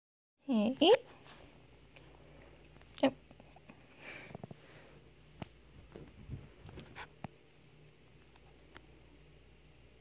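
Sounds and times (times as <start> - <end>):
cat paws scrambling on carpet: 5.3 - 7.2.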